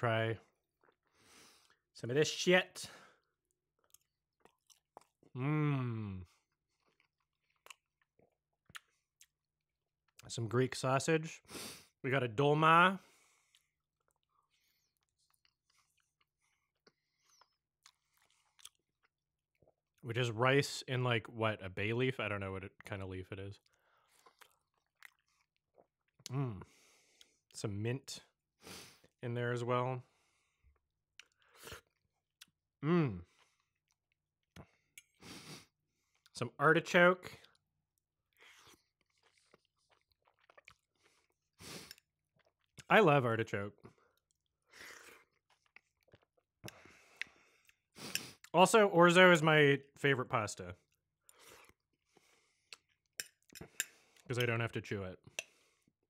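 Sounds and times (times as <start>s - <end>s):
close chewing and mouth clicks: 0.6s - 1.9s, 3.2s - 5.3s, 6.3s - 9.5s, 13.4s - 20.0s, 23.6s - 27.6s, 30.7s - 32.6s, 33.2s - 36.4s, 37.3s - 42.9s, 43.7s - 48.6s, 50.8s - 54.5s
person humming mmm: 5.4s - 6.3s, 32.8s - 33.2s
soft chewing mouth clicks: 6.8s - 9.4s, 23.6s - 27.4s, 37.4s - 42.9s, 50.9s - 54.3s.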